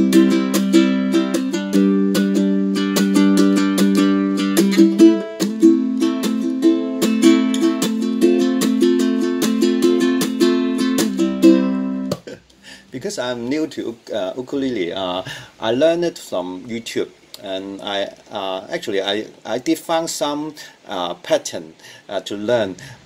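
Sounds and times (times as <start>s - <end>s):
ukulele strumming: 0.0s - 12.6s.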